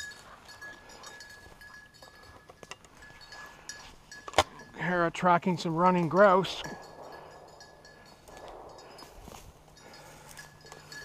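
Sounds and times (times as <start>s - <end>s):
footsteps through dry undergrowth: 0.0s - 4.2s, 6.8s - 11.0s
leaves rustling and crackling: 8.1s - 11.0s.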